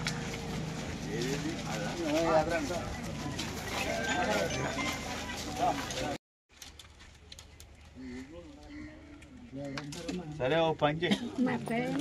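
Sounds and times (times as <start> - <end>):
men talking: 0.9 - 6.2, 8.0 - 11.9.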